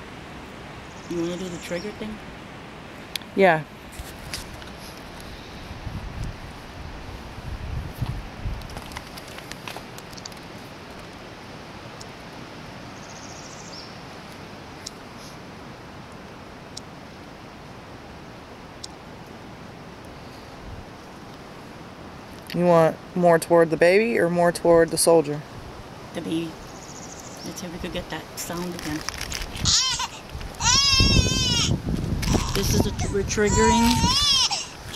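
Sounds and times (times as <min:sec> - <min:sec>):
outdoor background hiss: 0:00.0 - 0:34.9
faint clicks: 0:08.6 - 0:11.2.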